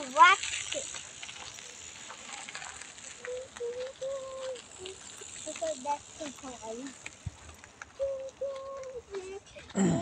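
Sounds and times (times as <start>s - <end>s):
crackly outdoor hiss: 0.0s - 10.0s
faint ticks: 0.7s - 9.8s
person humming tones: 9.8s - 10.0s.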